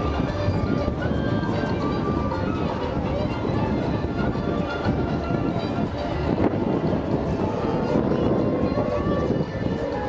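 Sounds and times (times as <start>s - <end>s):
crowd chatter: 0.0s - 10.0s
faint music: 0.0s - 10.0s
low rumble of wheeled rig: 0.0s - 10.0s.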